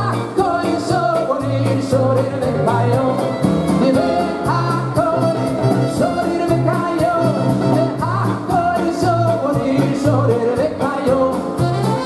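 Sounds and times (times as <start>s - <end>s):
bass line: 0.0s - 12.0s
men singing with band: 0.0s - 12.0s.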